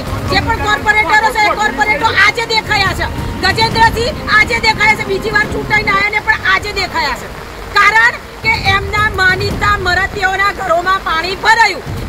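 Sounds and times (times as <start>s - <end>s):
low background rumble: 0.0s - 12.0s
woman speaking rapidly: 0.2s - 11.8s.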